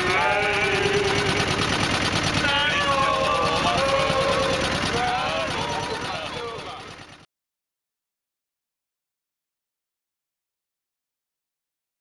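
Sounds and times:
men singing unaccompanied: 0.0s - 1.7s, 2.4s - 6.7s
motorboat engine running: 0.0s - 7.3s.

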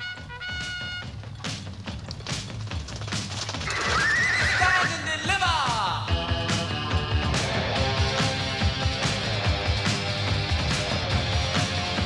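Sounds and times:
horse whinnying: 3.4s - 5.2s.

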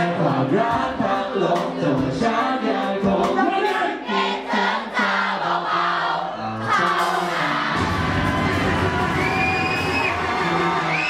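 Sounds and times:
person singing into microphone: 0.0s - 5.6s
crowd singing along: 0.0s - 11.0s
loud music: 0.0s - 11.0s.

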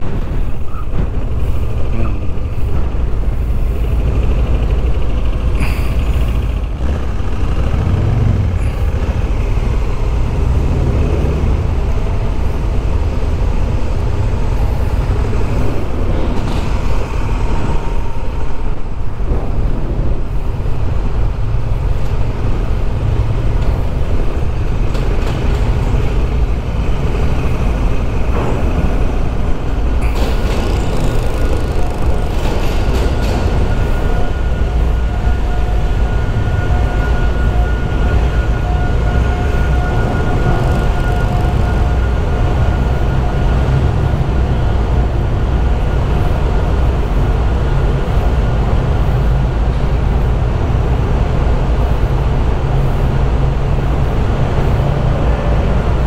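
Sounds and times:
motorcycle engine running: 1.9s - 11.8s, 30.2s - 33.0s.

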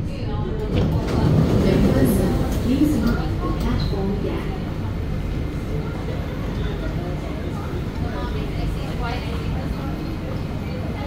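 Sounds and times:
faint voices of people: 0.0s - 11.0s
metro train low rumble: 0.0s - 11.0s.

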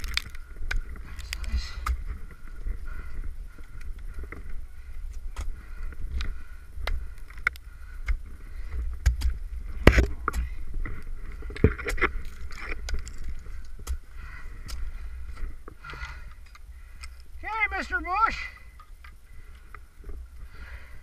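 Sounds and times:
steady low rumble: 0.0s - 17.4s.

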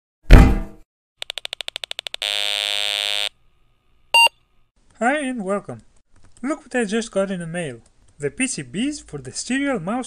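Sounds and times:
loud thud with ring: 0.3s - 0.8s.

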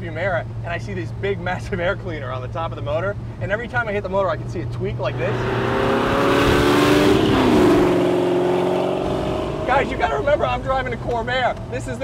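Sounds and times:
road and wind noise: 0.0s - 12.0s
car engine driving by: 5.0s - 11.7s.

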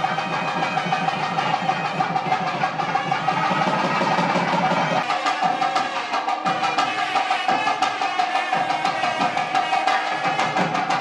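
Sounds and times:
rapid percussion beat: 0.0s - 11.0s.

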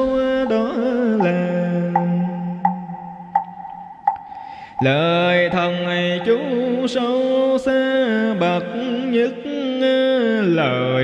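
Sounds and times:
even knocks: 0.0s - 6.7s
chanting with music: 0.0s - 11.0s.

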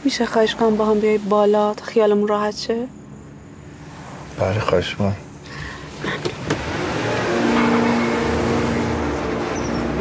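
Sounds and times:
car engine running: 3.9s - 10.0s.

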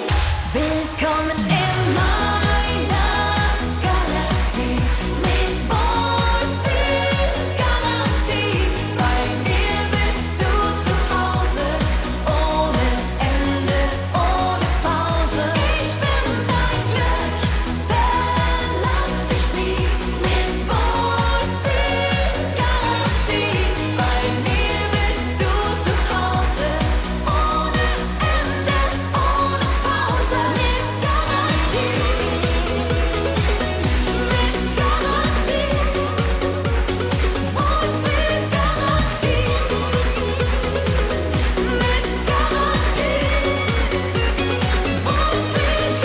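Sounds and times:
pop band with kick drum: 0.0s - 46.0s
woman singing: 0.0s - 46.0s.

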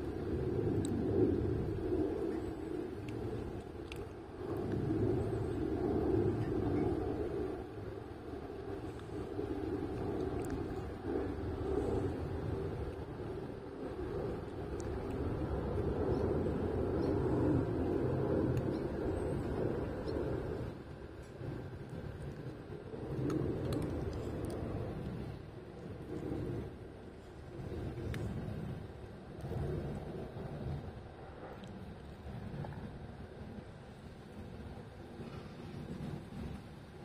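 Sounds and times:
low outdoor rumble: 0.0s - 37.0s
faint clicks: 3.0s - 4.8s, 28.0s - 28.4s.

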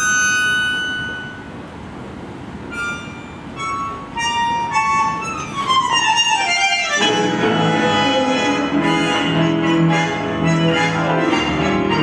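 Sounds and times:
bandoneon chord: 2.7s - 12.0s.

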